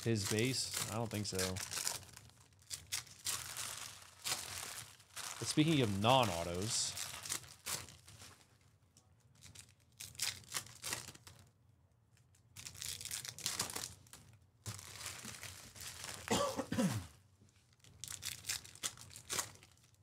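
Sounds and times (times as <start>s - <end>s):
foil wrappers crinkling and tearing: 0.0s - 8.6s, 9.4s - 11.5s, 12.5s - 16.3s, 17.7s - 20.0s.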